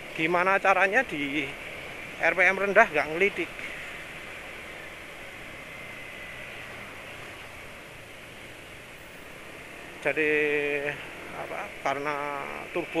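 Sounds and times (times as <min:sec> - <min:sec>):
faint high whine: 0:00.0 - 0:13.0.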